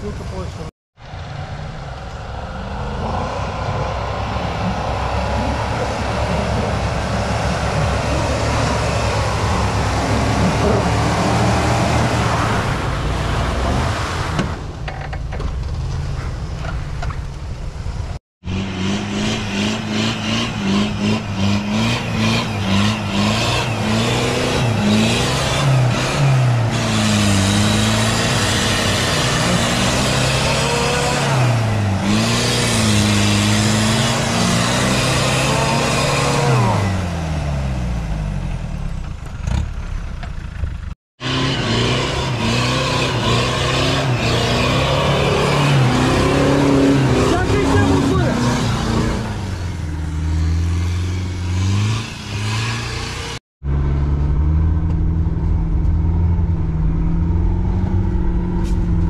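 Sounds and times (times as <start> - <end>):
off-road engines revving: 0.0 - 14.8, 18.4 - 59.0.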